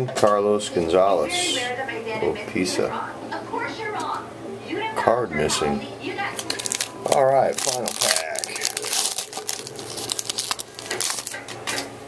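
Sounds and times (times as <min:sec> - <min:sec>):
foil wrapper tearing and crinkling: 0:06.4 - 0:11.5.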